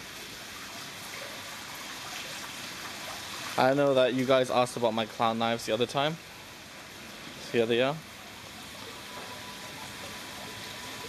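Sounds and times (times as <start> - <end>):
water trickling into pond: 0.0 - 11.0.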